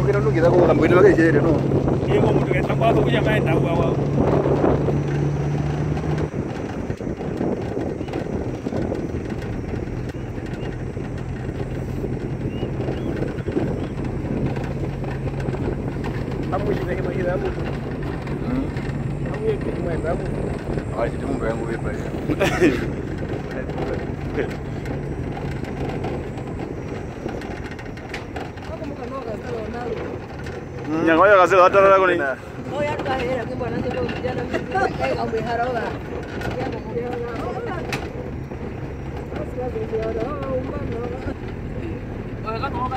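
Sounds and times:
rumbling road noise: 0:00.0 - 0:42.9
truck engine hum: 0:00.0 - 0:42.9
wind noise: 0:00.0 - 0:42.9.

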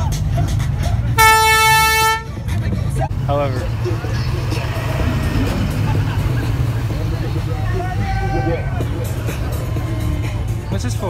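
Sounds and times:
vehicle horn blast: 0:01.2 - 0:02.4.

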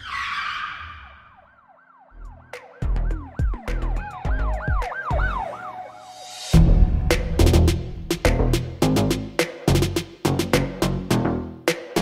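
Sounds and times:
rising and falling siren effect: 0:00.0 - 0:06.9
whoosh hit: 0:06.2 - 0:08.8
heavy bass hits: 0:06.6 - 0:10.0.

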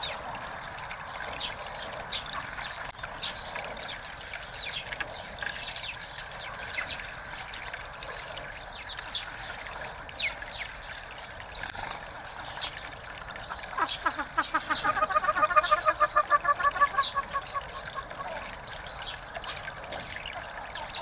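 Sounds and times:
water trickling into bird bath: 0:00.0 - 0:21.0
small birds chirping: 0:08.6 - 0:21.0.

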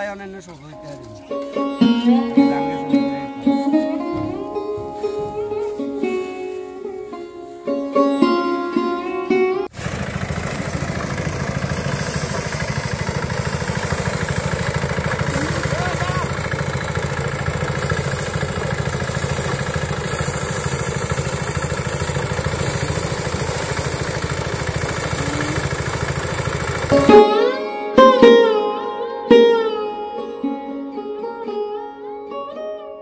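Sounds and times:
sitar music: 0:00.0 - 0:09.7, 0:13.2 - 0:33.0
threshing drum running: 0:09.7 - 0:27.4.

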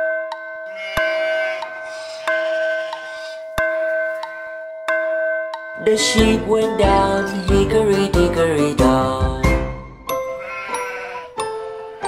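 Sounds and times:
backing music: 0:05.8 - 0:10.4.

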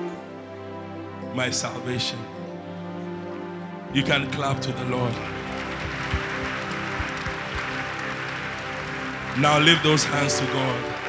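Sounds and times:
held keyboard chords: 0:00.0 - 0:11.0
crowd applauding: 0:04.0 - 0:11.0.

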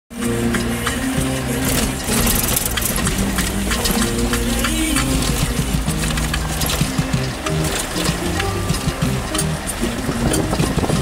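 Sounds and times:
car engine running: 0:00.1 - 0:11.0
clicks and rattles: 0:00.2 - 0:11.0.

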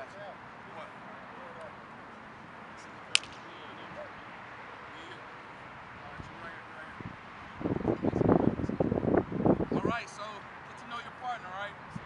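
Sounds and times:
outdoor background hiss: 0:00.0 - 0:12.0
sharp smack: 0:03.1 - 0:03.5.

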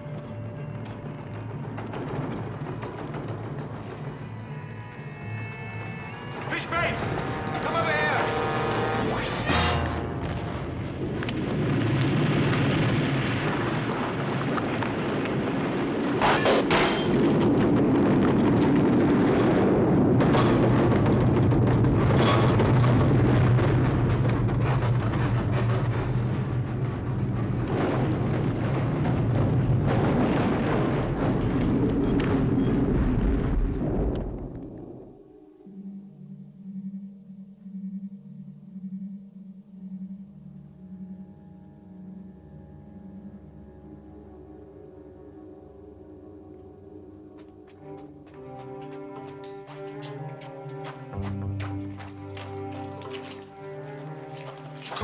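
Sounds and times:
earthquake rumble: 0:00.0 - 0:05.5, 0:06.1 - 0:35.6
music: 0:00.0 - 0:12.2, 0:16.0 - 0:32.9, 0:34.3 - 0:55.0.

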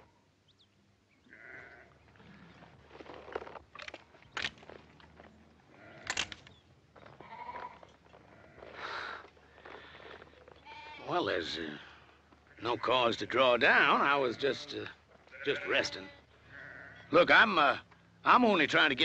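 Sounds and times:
sheep bleating: 0:01.2 - 0:02.6, 0:05.7 - 0:06.1, 0:07.2 - 0:08.8, 0:10.6 - 0:11.4, 0:13.8 - 0:17.2.

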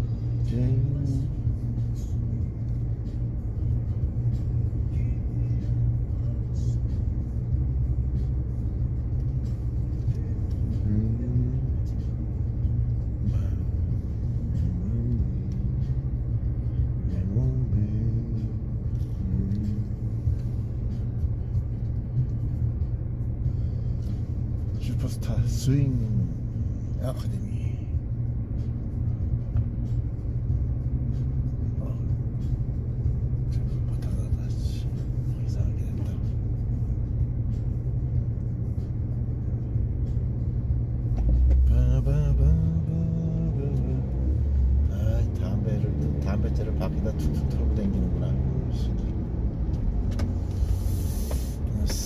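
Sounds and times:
car engine idling: 0:00.0 - 0:52.0.

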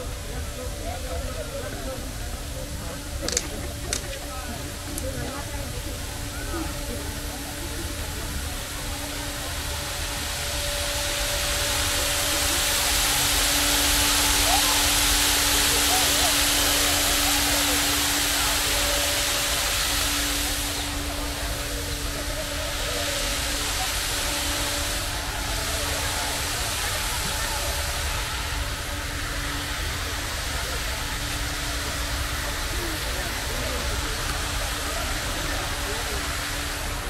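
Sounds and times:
fountain water falling into pool: 0:00.0 - 0:37.0
people talking in background: 0:00.0 - 0:37.0.

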